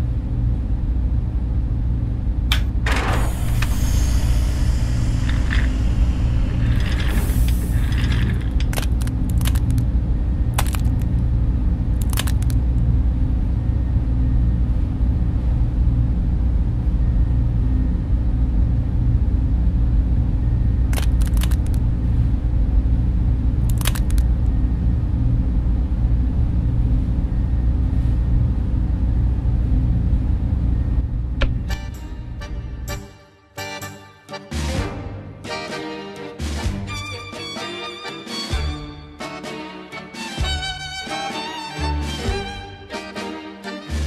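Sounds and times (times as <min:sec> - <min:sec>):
low droning hum: 0:00.0 - 0:33.8.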